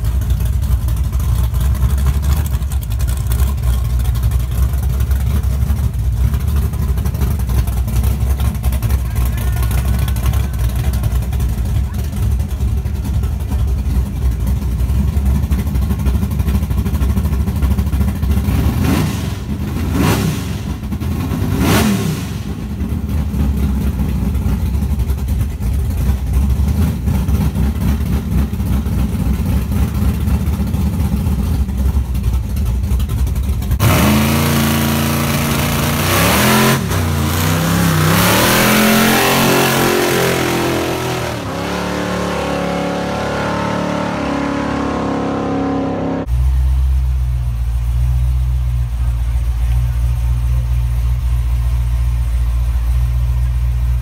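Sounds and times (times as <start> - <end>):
car accelerating with gear shifts: 0.0 - 46.8
car engine idling and revving: 0.0 - 54.0.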